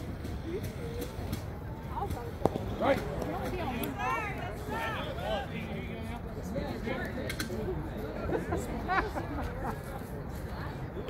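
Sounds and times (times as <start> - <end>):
players chattering: 0.0 - 11.0.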